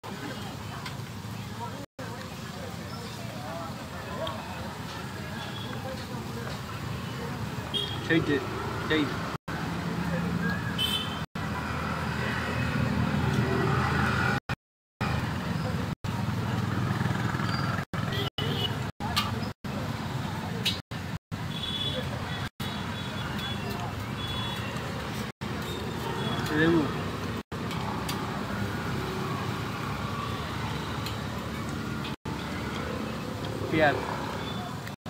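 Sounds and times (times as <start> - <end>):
outdoor noise: 0.0 - 35.0
traffic hum: 0.0 - 35.0.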